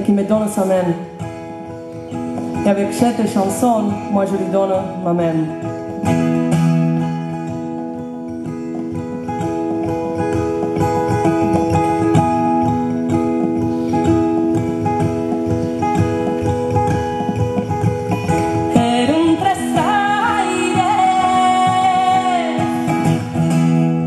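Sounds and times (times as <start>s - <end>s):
acoustic guitar plucking: 0.0s - 24.0s
woman singing: 2.6s - 5.7s, 18.6s - 23.5s.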